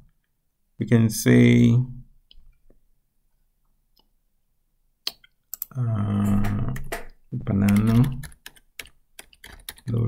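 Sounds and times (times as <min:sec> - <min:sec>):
keyboard typing: 0:05.1 - 0:10.0.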